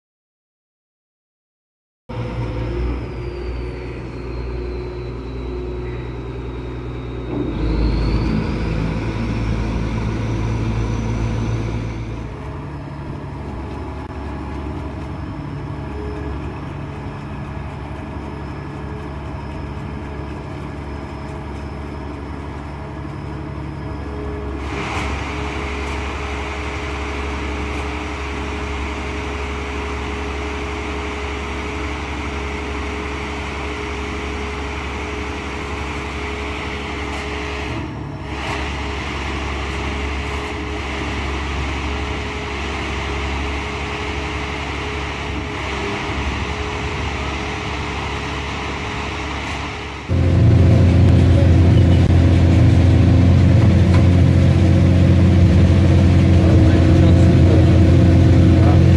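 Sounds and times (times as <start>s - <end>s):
high whine: 2.1s - 58.9s
rushing noise: 2.2s - 16.9s, 21.8s - 58.9s
boat engine running: 2.3s - 58.9s.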